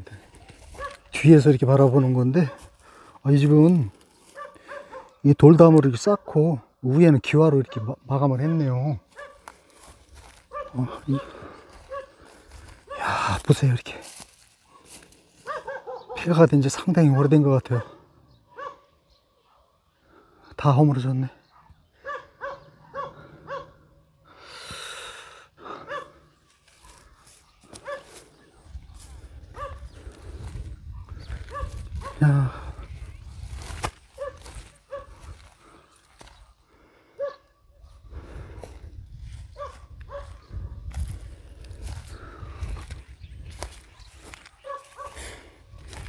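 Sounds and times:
dog barking: 0:00.8 - 0:01.1, 0:02.4 - 0:02.8, 0:04.3 - 0:05.2, 0:07.6 - 0:09.5, 0:10.5 - 0:12.3, 0:14.6 - 0:16.3, 0:17.0 - 0:19.9, 0:21.4 - 0:24.2, 0:25.8 - 0:27.1, 0:27.8 - 0:28.5, 0:29.5 - 0:29.9, 0:30.9 - 0:32.2, 0:34.2 - 0:35.2, 0:37.2 - 0:38.0, 0:39.6 - 0:40.5, 0:43.9 - 0:45.2.

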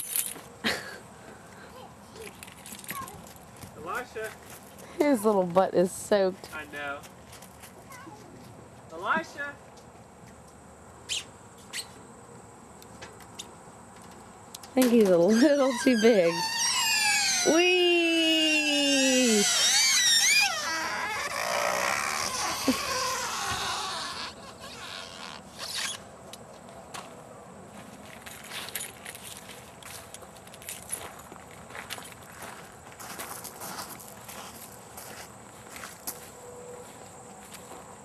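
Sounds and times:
high wavering squeals: 0:15.2 - 0:26.0
man calling wee: 0:15.6 - 0:25.5.

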